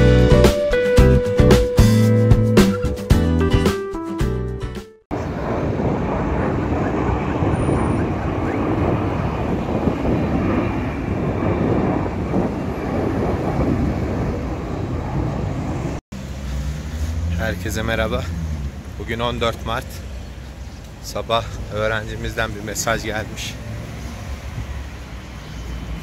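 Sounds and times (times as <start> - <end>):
airplane engine rumble: 5.1 - 26.0
street noise: 5.1 - 26.0.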